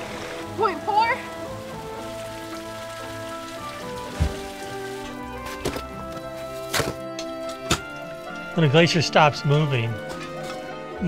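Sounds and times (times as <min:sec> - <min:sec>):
dripping meltwater: 0:00.0 - 0:10.8
film music with held notes: 0:00.0 - 0:11.0.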